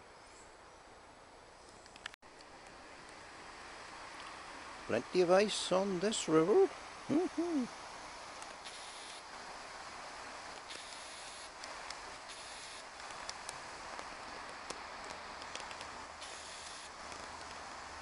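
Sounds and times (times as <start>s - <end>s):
faint clicks: 1.6s - 3.2s, 10.5s - 17.6s
river flowing: 2.3s - 18.0s.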